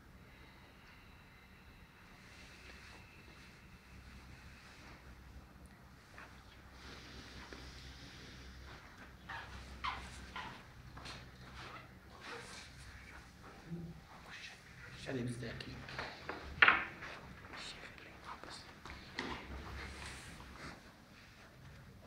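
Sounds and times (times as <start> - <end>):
man breathing slowly: 0.0 - 10.7.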